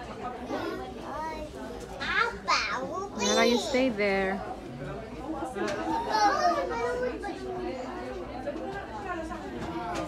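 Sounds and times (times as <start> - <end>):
babble of voices: 0.0 - 10.0
young child's voice: 6.0 - 7.3.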